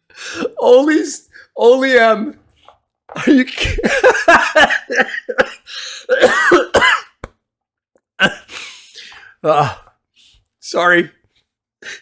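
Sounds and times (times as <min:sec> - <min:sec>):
man coughing and laughing: 0:03.1 - 0:07.3, 0:08.2 - 0:09.7.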